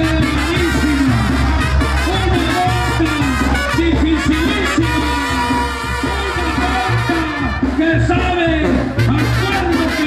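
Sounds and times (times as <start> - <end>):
loud music with bass line: 0.0 - 10.0.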